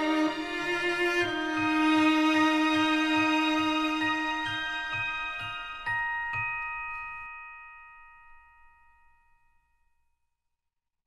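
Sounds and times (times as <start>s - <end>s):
mallet percussion chord ringing: 0.0s - 9.7s.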